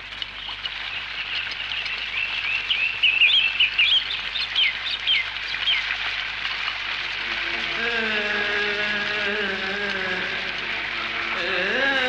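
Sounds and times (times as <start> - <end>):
birds chirping: 0.0 - 6.0
steady hiss: 3.1 - 12.0.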